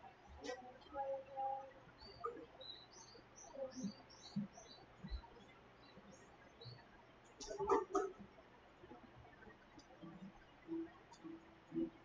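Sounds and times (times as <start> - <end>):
birds chirping: 0.3 - 8.3.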